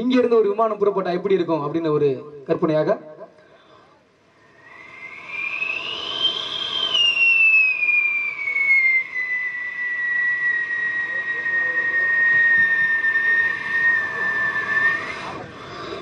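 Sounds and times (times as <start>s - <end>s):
person whistling into microphone: 4.5s - 15.5s.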